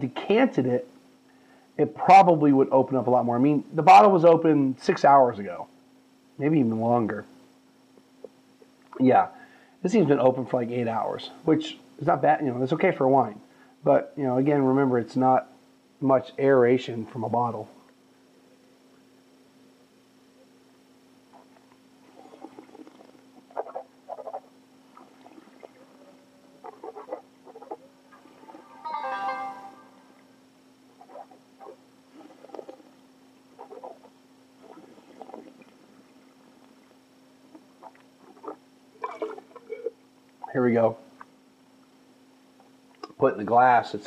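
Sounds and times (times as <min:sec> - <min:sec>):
slurping wine: 0:22.1 - 0:23.2.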